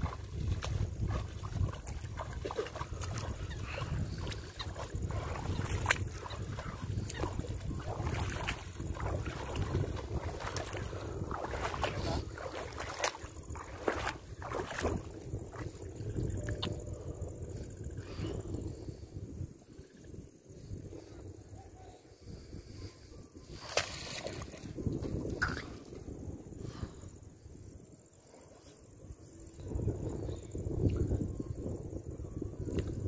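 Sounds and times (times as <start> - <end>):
legs wading through shallow water: 0.0 - 16.8, 23.4 - 24.8
wind rumble on microphone: 0.0 - 33.0.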